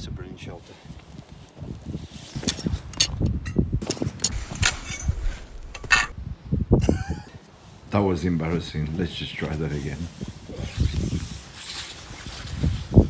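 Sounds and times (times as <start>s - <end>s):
poncho shelter rustling: 0.4s - 13.0s
sharp clicks and knocks: 2.4s - 6.1s.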